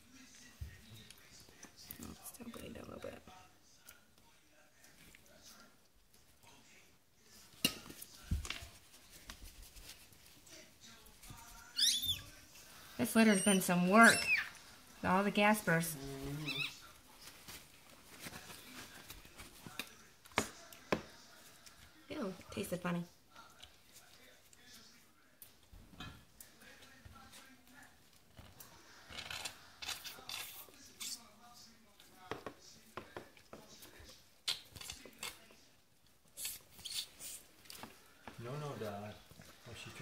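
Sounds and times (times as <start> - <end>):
puppy squeaking: 11.7 - 12.3, 13.1 - 14.6, 16.4 - 16.8.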